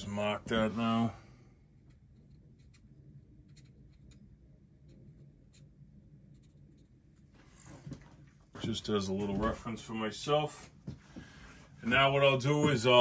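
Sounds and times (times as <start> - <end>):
low steady hum: 0.0 - 13.0
marker scratching on metal: 1.8 - 7.4.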